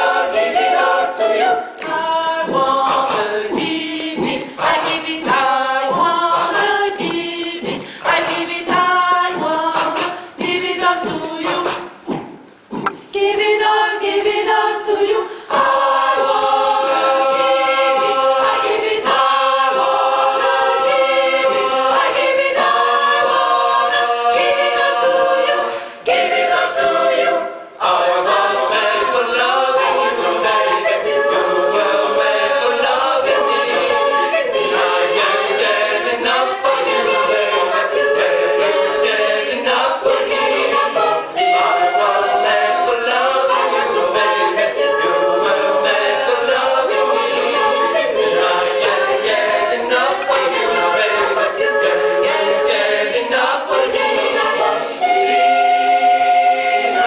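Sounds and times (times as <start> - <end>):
a cappella choir singing: 0.0 - 57.0.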